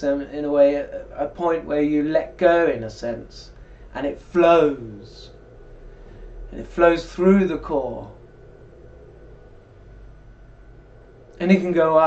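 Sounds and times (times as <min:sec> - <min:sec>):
faint low hum with hiss: 0:00.0 - 0:12.0.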